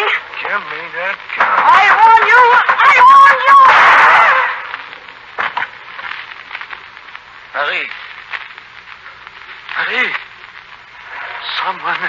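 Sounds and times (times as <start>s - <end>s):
dialogue: 0.0s - 12.0s
radio crackle and hiss: 0.0s - 12.0s.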